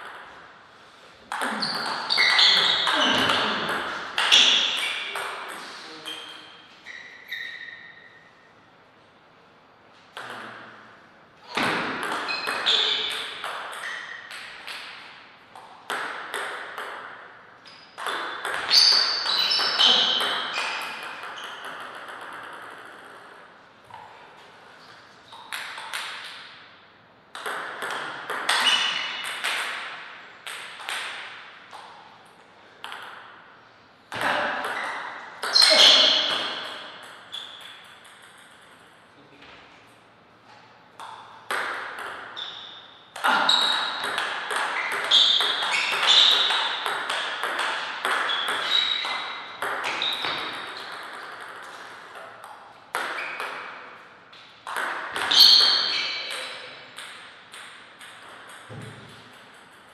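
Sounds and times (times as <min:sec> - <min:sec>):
ball bouncing on table: 0:01.3 - 0:06.4, 0:10.1 - 0:10.6, 0:11.5 - 0:24.1, 0:25.3 - 0:26.5, 0:27.3 - 0:33.4, 0:34.1 - 0:39.6, 0:41.0 - 0:42.6, 0:43.2 - 0:53.9, 0:54.6 - 0:59.9.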